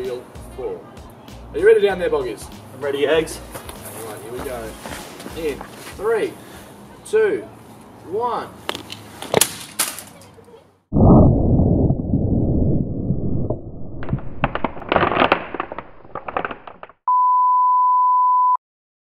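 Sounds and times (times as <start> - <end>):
clattering and crackling on ground: 8.7 - 10.6, 14.0 - 17.0
loud rumbling crash: 11.0 - 16.8.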